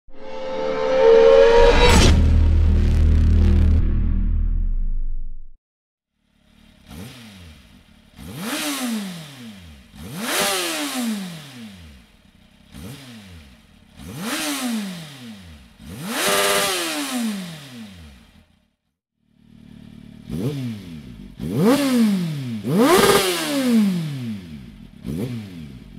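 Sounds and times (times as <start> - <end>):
motorcycle engine revving: 6.2 - 25.9.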